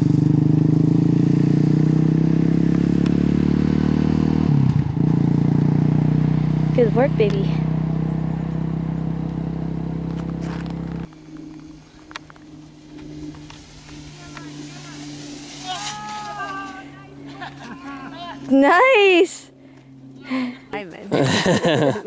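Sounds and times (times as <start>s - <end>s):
low engine hum: 0.0s - 22.0s
outdoor ambience: 0.0s - 22.0s
drawn-out vocal call: 11.2s - 18.6s.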